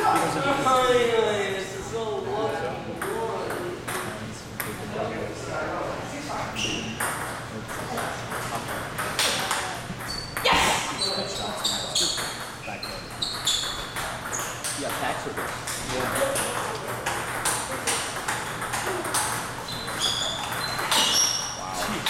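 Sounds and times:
table tennis ball clicking: 0:13.3 - 0:21.5.

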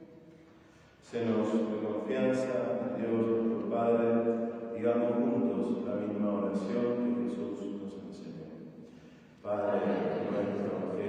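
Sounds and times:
man chanting: 0:01.1 - 0:08.5, 0:09.4 - 0:11.0.

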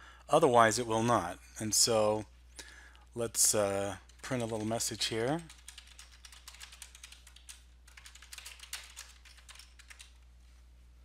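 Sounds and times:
computer keyboard typing: 0:04.0 - 0:10.2.

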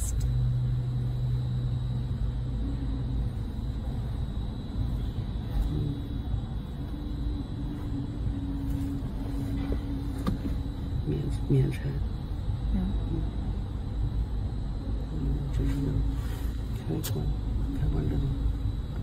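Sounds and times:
faint hum: 0:00.0 - 0:19.0
low background rumble: 0:00.0 - 0:19.0.

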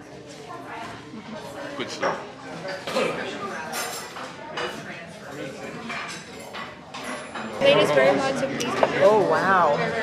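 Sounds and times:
indistinct chatter of diners: 0:00.0 - 0:10.0
dishes and cutlery clinking: 0:00.3 - 0:10.0.

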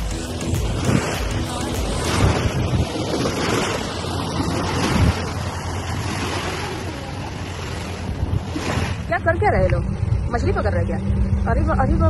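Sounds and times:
waves washing onto stony shore: 0:00.0 - 0:09.4
wind rumbling on microphone: 0:00.0 - 0:12.0.

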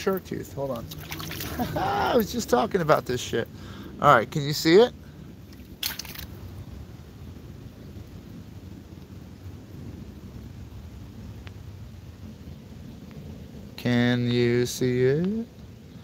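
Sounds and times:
brook flowing: 0:00.0 - 0:03.9, 0:04.6 - 0:06.8.

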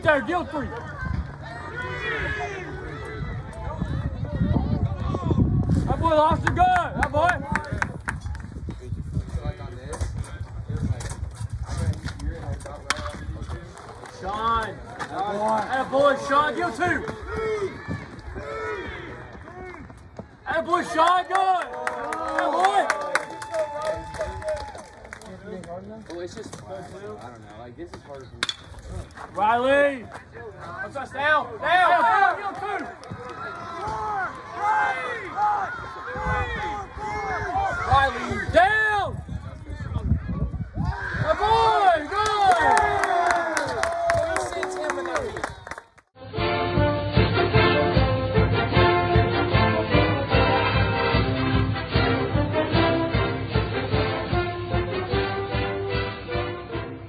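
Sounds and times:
spectators chattering: 0:00.0 - 0:05.5
metal bat hitting ball: 0:28.4 - 0:28.7.

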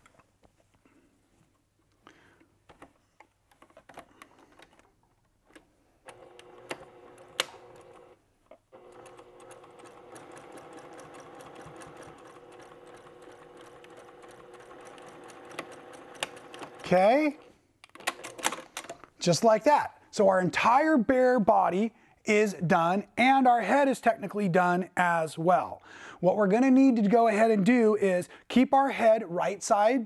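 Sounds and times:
sewing machine stitching: 0:06.0 - 0:18.6.

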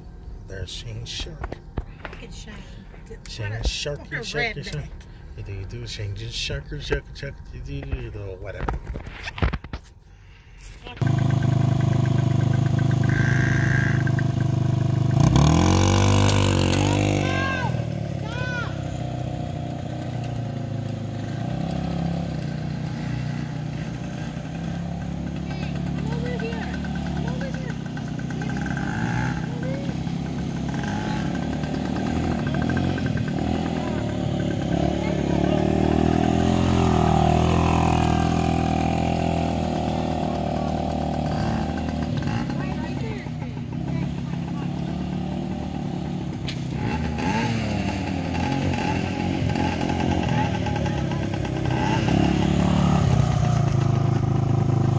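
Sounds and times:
atv engine revving: 0:10.9 - 0:54.9.

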